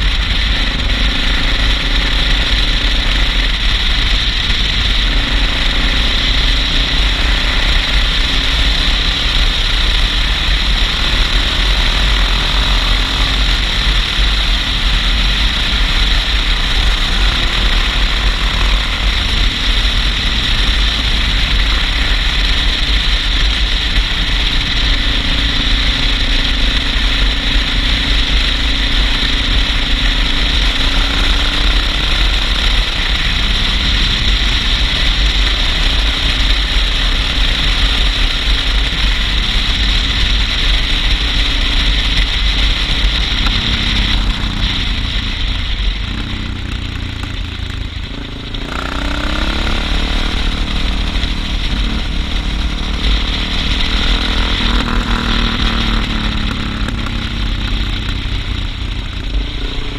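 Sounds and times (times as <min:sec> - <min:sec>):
motorcycle engine cruising: 0:00.0 - 0:59.9.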